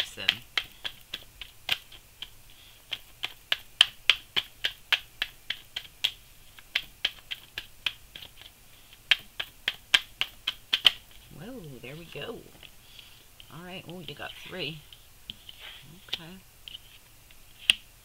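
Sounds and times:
cards being shuffled: 13.4 - 17.9.

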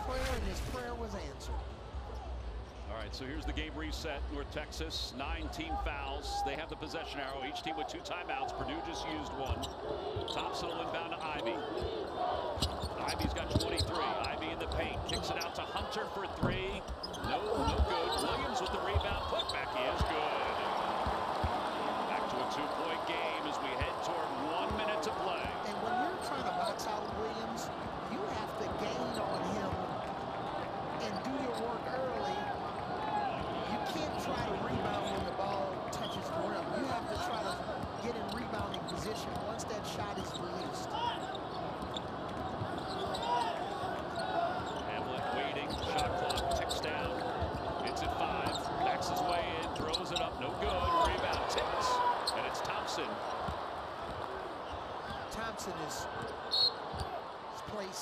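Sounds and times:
players calling out: 5.4 - 58.0.

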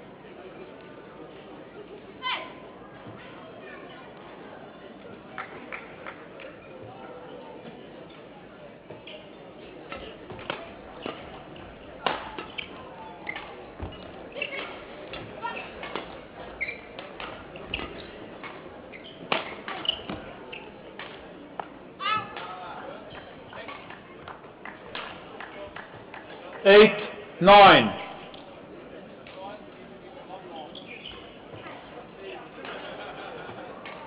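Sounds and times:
shoe squeak: 9.0 - 10.2, 12.4 - 14.8, 15.4 - 20.8, 30.5 - 31.7.

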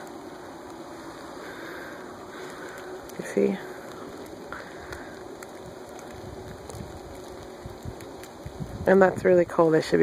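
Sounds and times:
faint snowflake ticks: 0.0 - 8.9
soft snowfall hiss: 0.0 - 10.0.

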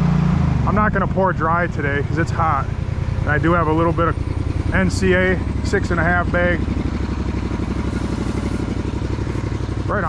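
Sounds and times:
small engine idling: 0.7 - 10.0.

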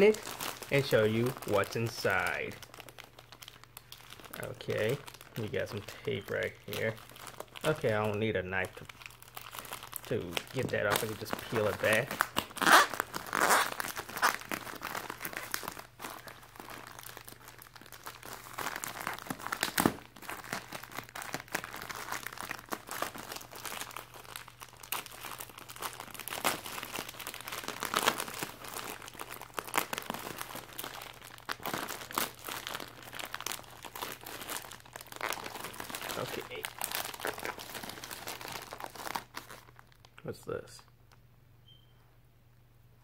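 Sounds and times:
plastic mailer bag crinkling: 0.0 - 40.1
packing tape peeling: 8.8 - 40.0.

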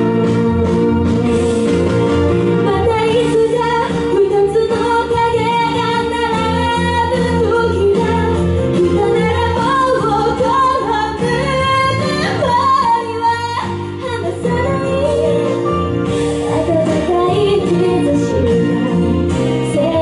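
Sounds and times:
instrumental accompaniment: 0.0 - 20.0
woman singing pop song: 0.0 - 20.0.

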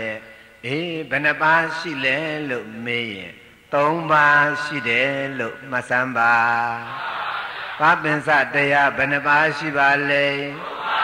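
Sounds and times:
monk preaching in intoned voice: 0.0 - 7.0, 7.8 - 10.8.

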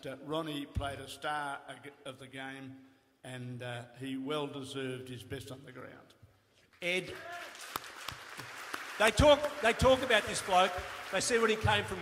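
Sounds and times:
audience applause: 7.1 - 12.0.

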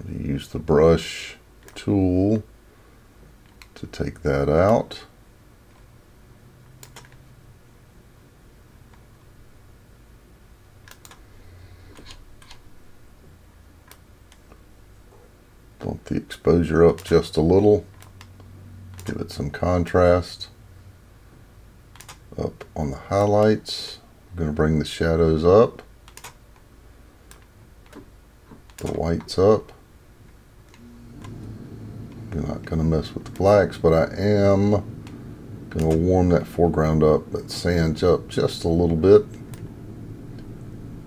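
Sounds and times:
faint low hum: 0.0 - 41.0
room hiss: 0.0 - 41.0
computer clicks: 6.8 - 7.2, 10.8 - 11.2, 21.9 - 22.2, 26.0 - 26.4.

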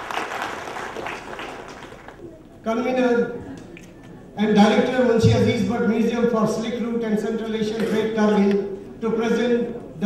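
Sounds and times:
audience applauding: 0.0 - 2.2.

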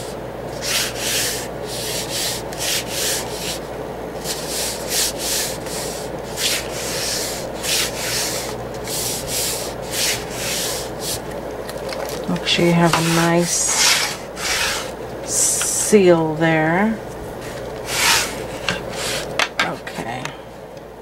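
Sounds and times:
hands rubbing paper: 0.5 - 15.6, 17.3 - 19.3.

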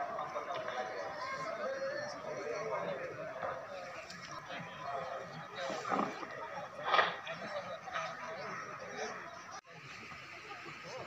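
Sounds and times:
people talking and calling out: 0.0 - 11.0.

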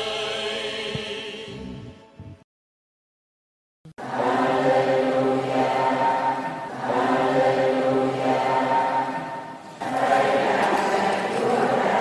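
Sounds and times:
choir singing a hymn: 0.0 - 2.0, 4.0 - 12.0.

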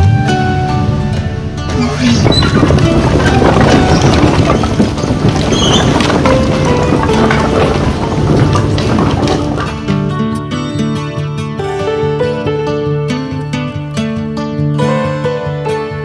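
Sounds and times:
background music: 0.0 - 16.0
firewood clattering onto pavement: 1.7 - 10.5.

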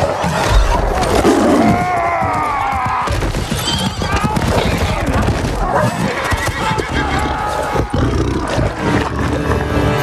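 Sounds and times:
horses whinnying: 0.0 - 9.8
galloping hooves: 0.0 - 10.0.

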